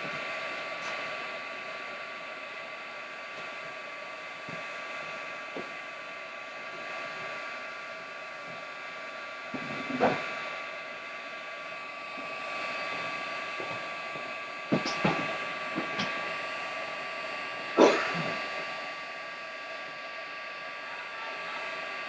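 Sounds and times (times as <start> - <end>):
heat gun whirring: 0.0 - 21.6.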